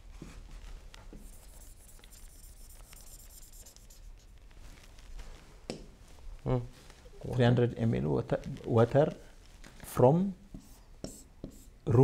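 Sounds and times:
pen scratching on whiteboard: 1.2s - 4.1s, 10.5s - 11.7s.

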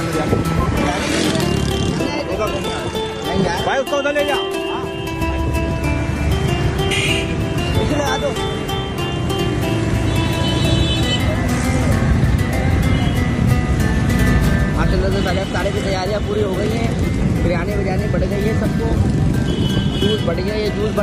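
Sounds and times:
crowd voices: 0.0s - 21.0s
music with long held notes: 0.0s - 21.0s.

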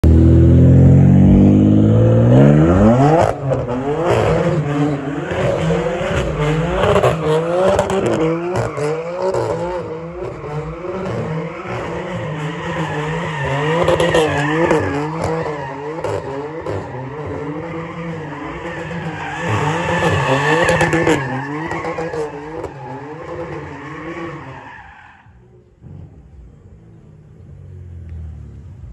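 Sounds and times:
car engine revving high: 0.0s - 24.6s.

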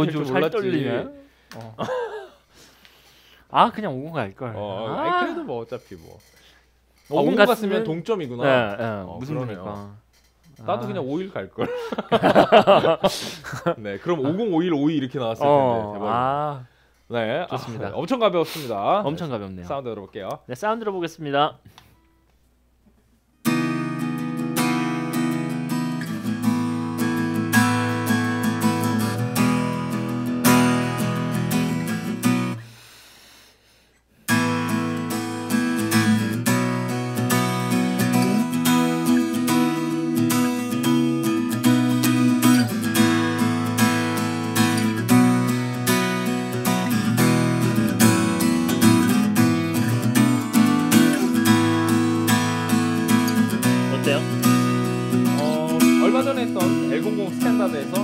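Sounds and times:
acoustic guitar strummed: 23.4s - 32.7s, 34.2s - 58.0s.

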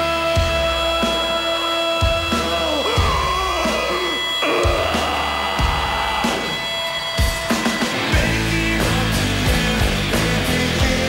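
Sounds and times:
distorted electric guitar: 0.0s - 11.0s
live rock band playing: 0.0s - 11.0s.

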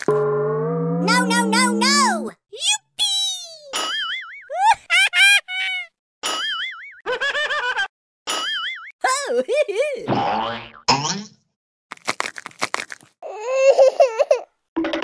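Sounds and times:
pitch-bending toots: 0.1s - 2.3s.

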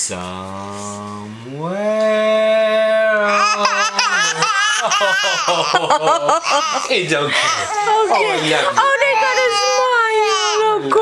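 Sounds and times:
infant crying: 3.2s - 11.0s.

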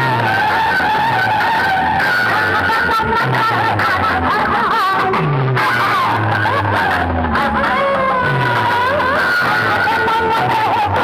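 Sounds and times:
loud music through loudspeakers: 0.0s - 11.0s.

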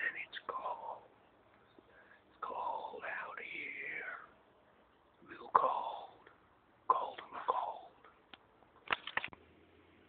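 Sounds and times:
person whispering: 0.0s - 1.2s, 2.4s - 4.4s, 5.2s - 6.3s, 6.9s - 8.1s
low room noise: 0.0s - 10.0s.

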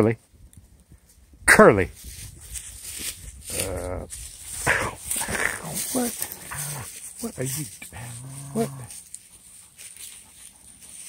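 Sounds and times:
dog low drawn-out vocalizing: 3.5s - 7.0s, 7.8s - 9.0s.

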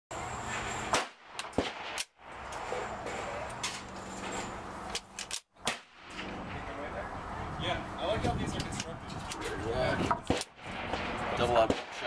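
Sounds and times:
gunshots cracking: 0.9s - 2.2s, 5.6s - 6.6s, 10.2s - 12.0s.

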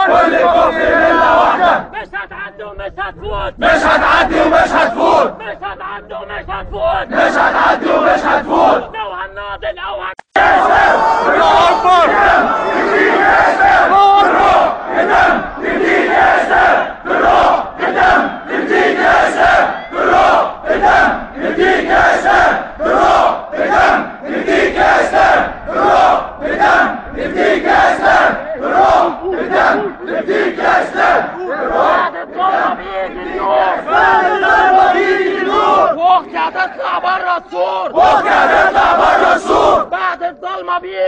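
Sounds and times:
crowd chanting slogans: 0.0s - 2.1s, 3.5s - 6.2s, 6.9s - 9.0s, 10.3s - 40.7s.

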